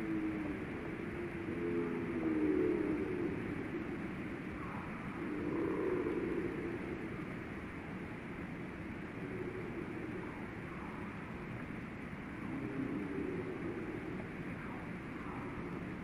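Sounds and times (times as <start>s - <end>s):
low background rumble: 0.0s - 16.0s
low wavering hum: 0.0s - 16.0s.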